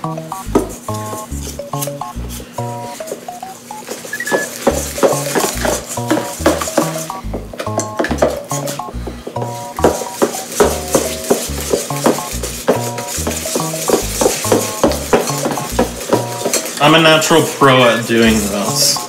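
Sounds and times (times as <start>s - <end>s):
background music with bass line: 0.0s - 3.0s, 4.6s - 16.6s
whisk scraping metal bowl: 4.1s - 7.2s, 9.5s - 19.0s.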